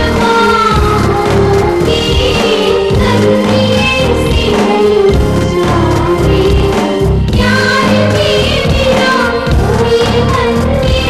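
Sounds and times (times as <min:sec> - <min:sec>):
instrumental accompaniment with bass: 0:00.0 - 0:11.0
person singing: 0:00.0 - 0:11.0.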